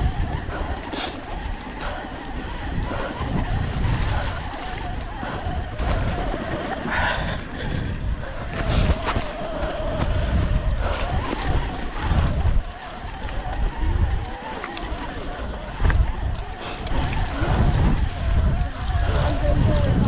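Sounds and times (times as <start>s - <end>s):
bike rolling over stony track: 0.0s - 20.0s
faint voices: 0.0s - 20.0s
wind rumbling on microphone: 0.0s - 20.0s.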